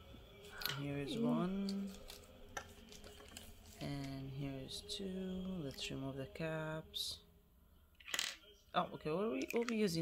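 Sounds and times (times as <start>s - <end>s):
handling small plastic bottles: 0.5s - 3.9s, 9.4s - 10.0s.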